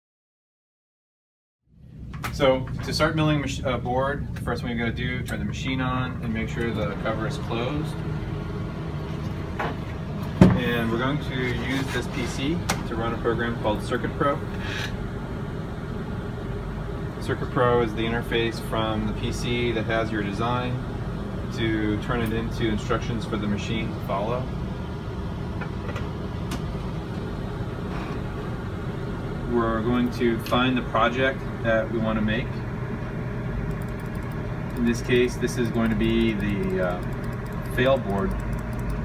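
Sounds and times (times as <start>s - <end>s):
low machinery hum: 1.7s - 39.0s
computer mouse click: 33.7s - 34.9s, 35.8s - 39.0s.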